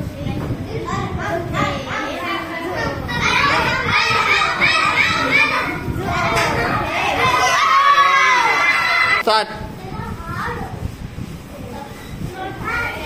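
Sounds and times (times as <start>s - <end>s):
children shouting and cheering: 1.0s - 9.2s.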